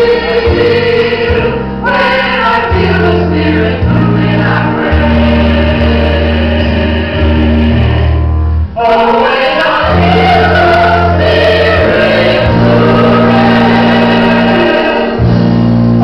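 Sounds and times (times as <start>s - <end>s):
choir singing worship song: 0.0s - 16.0s
low bass notes: 0.0s - 16.0s.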